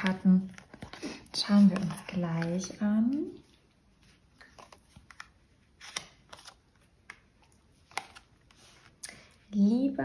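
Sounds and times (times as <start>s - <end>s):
cards clicking and brushing: 4.1s - 9.2s.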